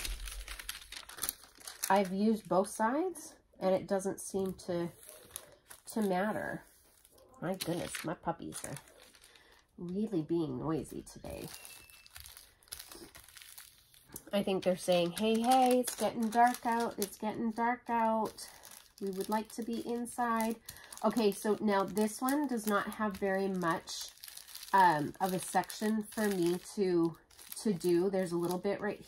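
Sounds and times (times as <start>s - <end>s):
paper rustling and crinkling: 0.0s - 2.5s, 4.4s - 10.0s, 10.9s - 29.0s.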